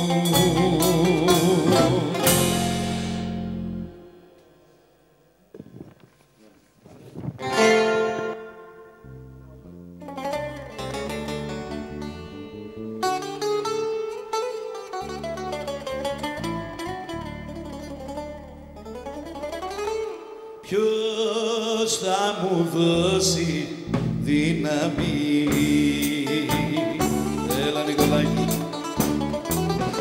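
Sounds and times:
bass line: 0.0 - 4.3, 7.2 - 13.5, 15.0 - 20.2, 22.9 - 30.0
plucked bouzouki notes: 0.0 - 4.6, 7.4 - 20.8, 24.0 - 30.0
small band playing instrumental: 0.0 - 4.6, 7.4 - 20.4, 23.8 - 30.0.

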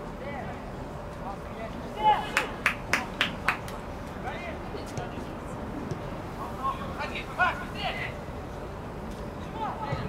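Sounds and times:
sharp hand claps: 2.3 - 3.8.

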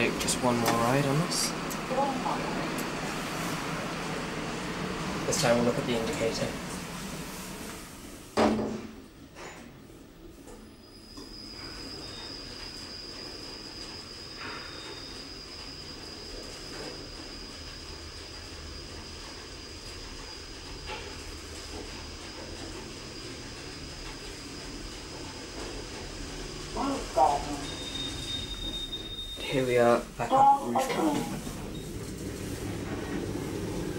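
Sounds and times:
lift rumble with high whine: 0.0 - 8.4.

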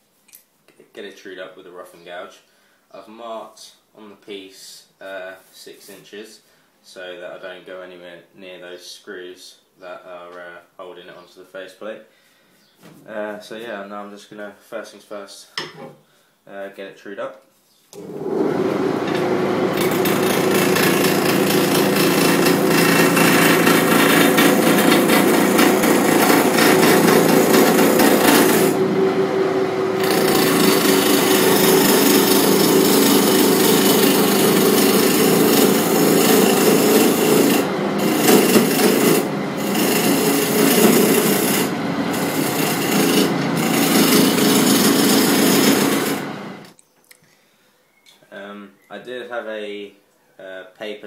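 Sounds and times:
lathe motor hum: 18.0 - 46.7
gouge rasping on wood lathe: 19.0 - 46.6.

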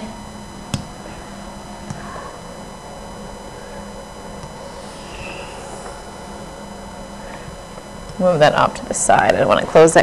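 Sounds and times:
faint electrical whine: 0.0 - 10.0.

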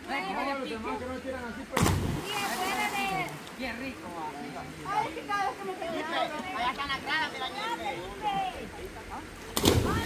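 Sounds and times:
person splashing into water: 1.8 - 2.9.

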